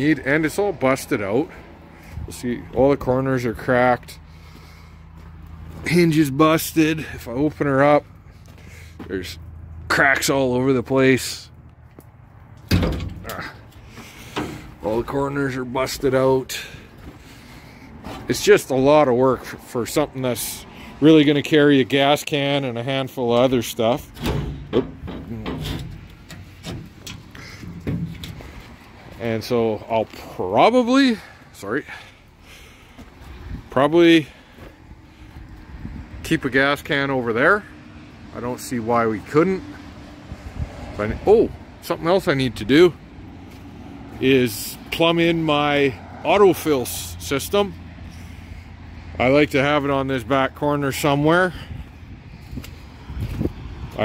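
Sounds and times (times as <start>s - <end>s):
wind buffeting microphone: 34.9s - 36.3s, 40.2s - 41.2s, 51.6s - 54.0s.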